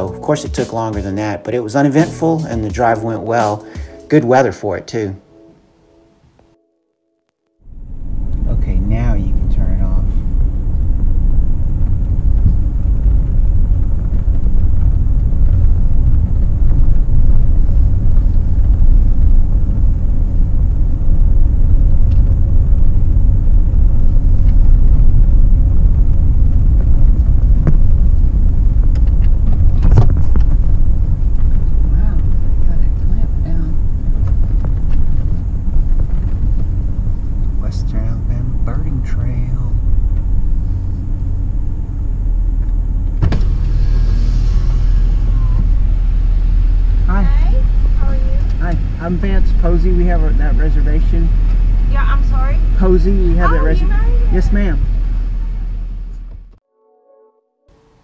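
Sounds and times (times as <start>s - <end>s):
truck engine and road noise: 7.6s - 56.6s.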